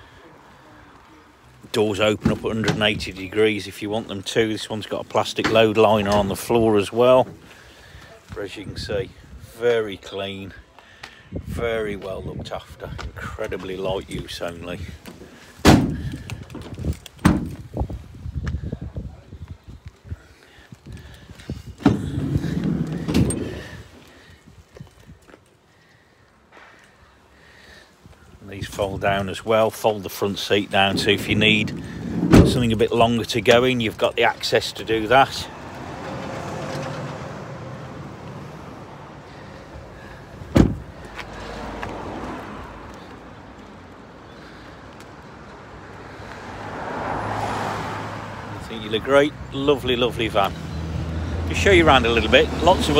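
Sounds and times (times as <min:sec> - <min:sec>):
road traffic: 0:00.0 - 0:52.9
sliding door rumbling along track: 0:21.8 - 0:23.6, 0:30.7 - 0:32.8.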